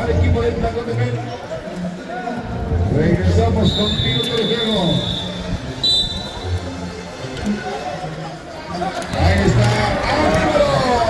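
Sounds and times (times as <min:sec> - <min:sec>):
spectators' voices: 0:00.0 - 0:11.0
referee's whistle: 0:03.6 - 0:06.5.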